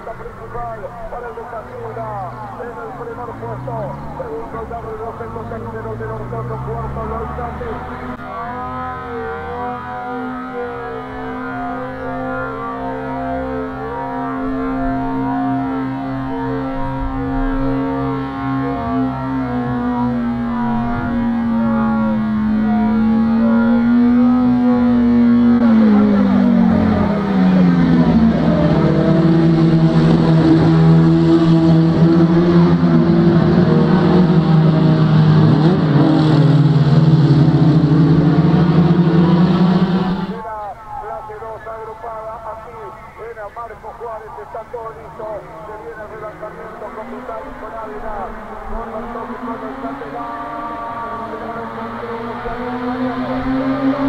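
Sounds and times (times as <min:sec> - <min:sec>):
racing car engines at high revs: 0:00.0 - 0:40.4, 0:43.4 - 0:54.0.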